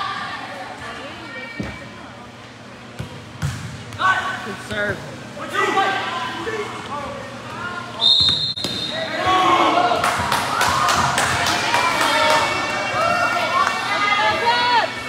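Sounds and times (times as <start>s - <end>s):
referee whistle blast: 8.0s - 9.1s
people shouting: 9.0s - 15.0s.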